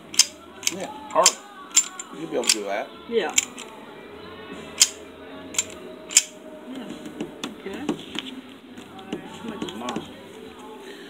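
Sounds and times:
background music: 0.0 - 11.0
pistol slide clicking: 0.1 - 2.6, 3.4 - 3.7, 4.8 - 5.0, 5.6 - 6.4.

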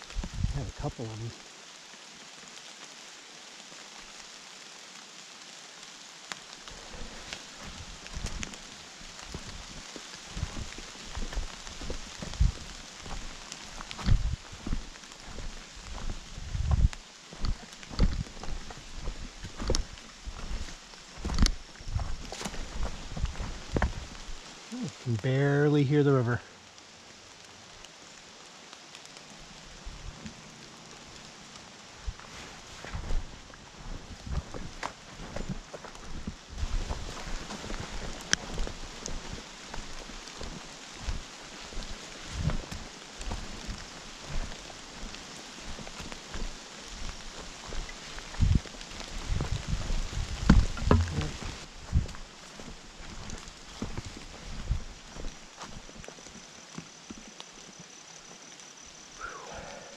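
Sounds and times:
walking stick tapping ground: 6.3 - 24.5, 32.0 - 58.4
footsteps through leaf litter: 6.4 - 24.9, 31.3 - 56.6.

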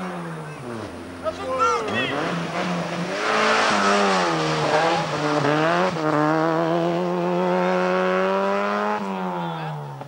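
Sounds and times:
car engine at high revs: 0.0 - 10.0.

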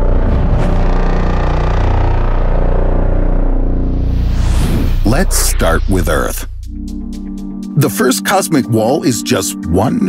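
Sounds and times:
deep bass drone: 0.0 - 7.8
sustained tones: 0.0 - 7.8.

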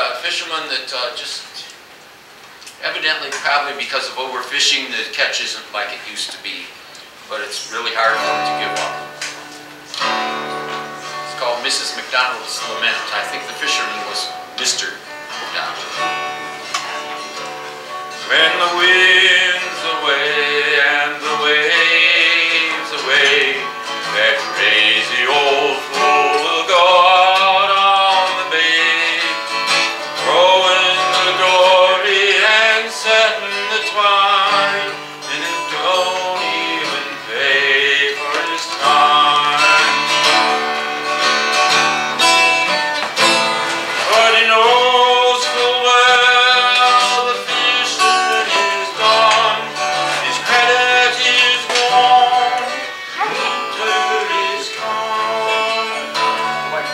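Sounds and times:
acoustic guitar: 0.0 - 56.9
man singing a folk song: 7.3 - 9.1, 11.3 - 16.5, 18.1 - 42.3, 43.2 - 56.9.

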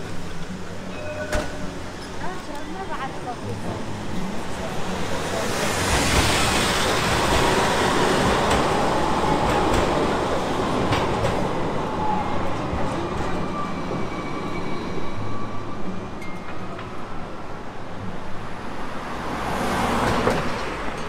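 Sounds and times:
tram wheels rushing on rails: 0.0 - 21.0.

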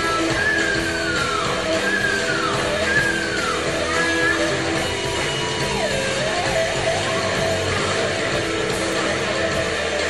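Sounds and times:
distorted electric guitar bending notes: 0.0 - 10.0
live rock band playing: 0.0 - 10.0.

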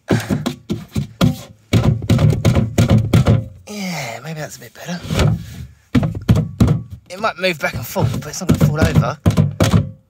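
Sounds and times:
plastic container knocking on wood: 0.2 - 3.6, 5.2 - 10.0.

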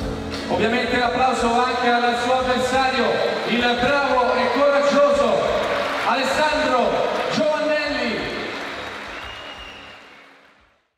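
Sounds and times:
man announcing over loudspeakers: 0.5 - 8.6.

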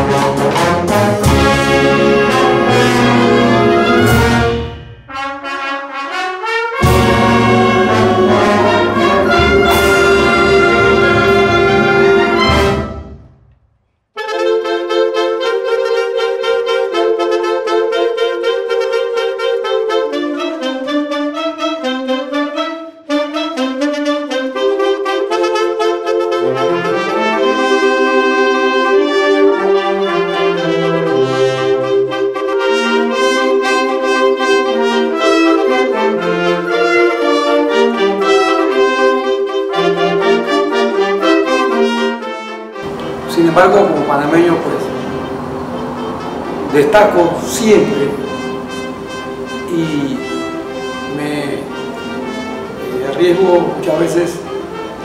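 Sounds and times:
concert band playing: 0.0 - 5.6, 6.8 - 13.2, 42.8 - 55.0
low brass bass line: 0.0 - 13.2, 42.8 - 55.0.

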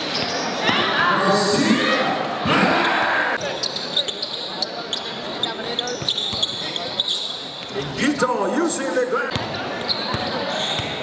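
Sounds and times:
murmur of crowd chatter: 0.0 - 11.0
basketball bouncing: 9.3 - 11.0.

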